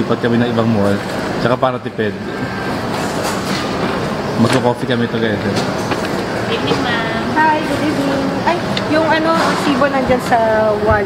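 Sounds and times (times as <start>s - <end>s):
shopping mall background noise: 0.0s - 11.0s.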